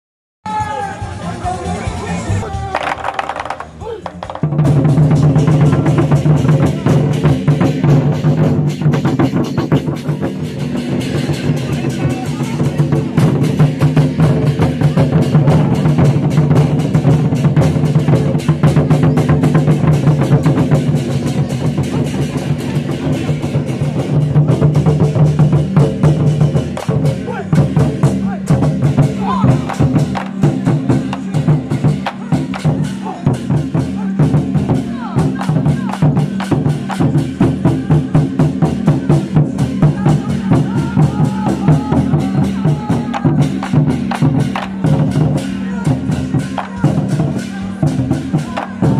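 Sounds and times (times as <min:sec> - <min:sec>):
large drums beating in rolls: 0:02.3 - 0:48.9
cymbals clashing: 0:02.5 - 0:48.9.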